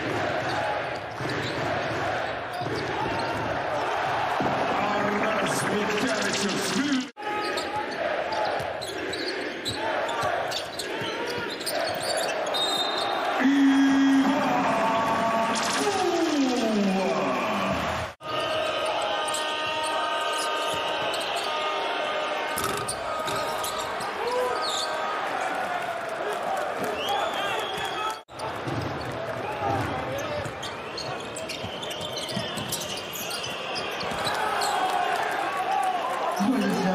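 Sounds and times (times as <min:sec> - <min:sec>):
crowd noise and voices: 0:00.0 - 0:36.9.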